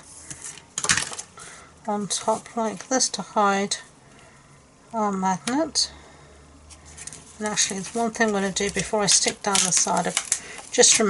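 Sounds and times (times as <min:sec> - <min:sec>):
paper handling: 0:06.7 - 0:11.0.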